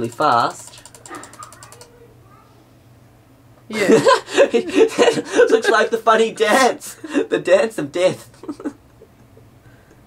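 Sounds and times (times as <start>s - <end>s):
rapid computer mouse clicking: 0.0s - 2.0s.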